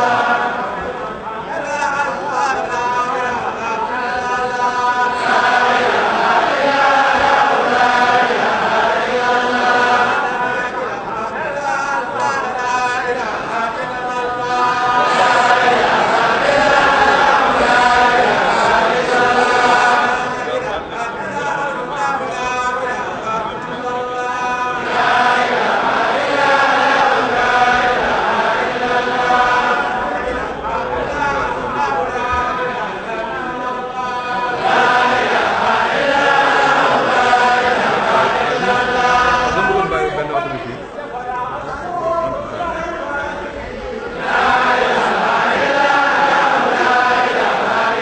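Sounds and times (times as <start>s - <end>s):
congregation chanting in unison: 0.0s - 48.0s.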